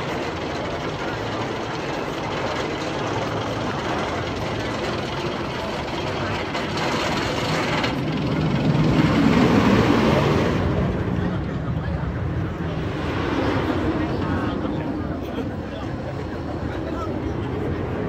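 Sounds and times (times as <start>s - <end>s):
roller coaster train rushing roar: 0.0s - 18.0s.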